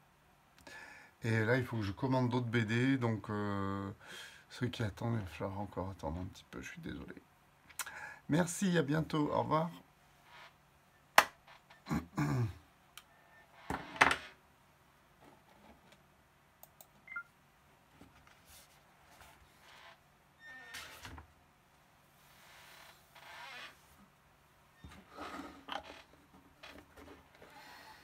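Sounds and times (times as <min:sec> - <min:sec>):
man coughing: 0:11.9 - 0:12.6.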